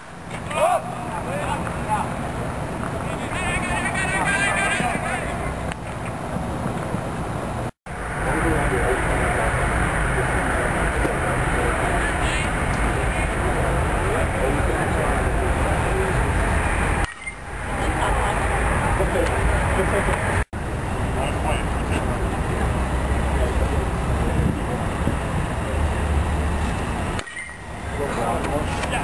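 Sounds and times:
rushing outdoor noise: 0:00.0 - 0:29.0.

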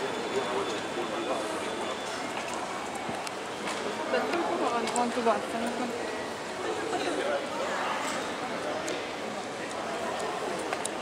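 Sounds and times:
city noise: 0:00.0 - 0:11.0
passers-by voices: 0:00.0 - 0:11.0.

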